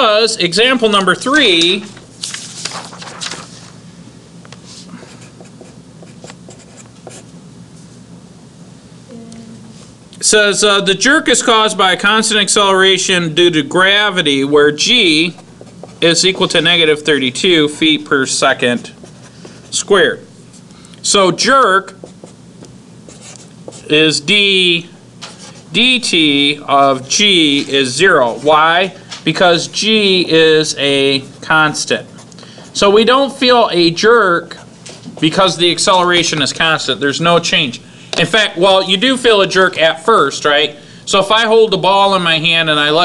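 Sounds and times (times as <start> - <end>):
man talking: 0.0 - 2.0, 10.2 - 15.4, 16.0 - 19.0, 19.7 - 20.3, 23.7 - 25.0, 25.7 - 32.1, 32.7 - 43.0
faint low hum: 0.0 - 43.0
marker pen on whiteboard: 4.5 - 7.4, 14.8 - 17.5, 18.3 - 20.7, 21.4 - 24.0, 25.2 - 25.8, 34.4 - 35.6
marker squeaking on whiteboard: 5.0 - 7.3, 21.8 - 22.4.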